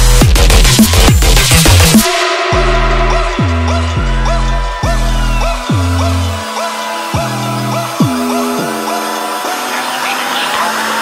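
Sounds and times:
hissy synth wash: 0:05.5 - 0:11.0.

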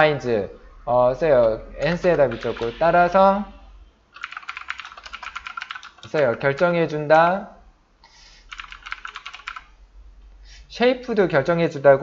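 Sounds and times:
computer keyboard typing: 0:01.4 - 0:02.8, 0:04.1 - 0:06.7, 0:08.5 - 0:09.7.

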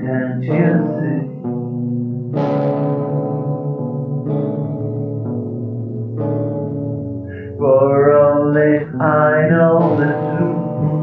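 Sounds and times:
person singing chant-like notes: 0:00.0 - 0:01.5, 0:07.3 - 0:11.0
steady drone: 0:00.0 - 0:02.4.

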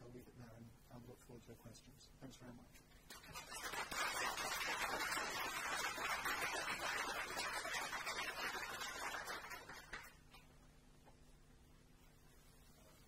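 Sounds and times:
audience applauding: 0:03.1 - 0:10.2.

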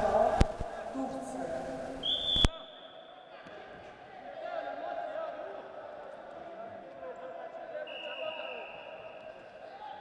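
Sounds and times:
voices around a hall: 0:00.0 - 0:10.0.

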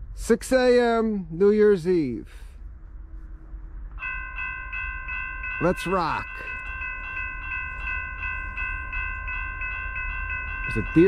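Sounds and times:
railroad crossing bell ringing: 0:03.9 - 0:11.0.

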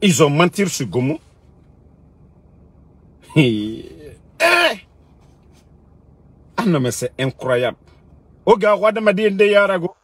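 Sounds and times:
low hum: 0:00.0 - 0:10.0
man exclaiming: 0:03.2 - 0:04.9.

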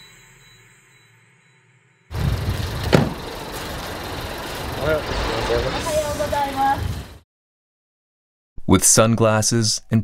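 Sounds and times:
vehicle rumble: 0:02.1 - 0:07.2
sharp knock: 0:02.9 - 0:03.2
voices: 0:04.8 - 0:06.9.

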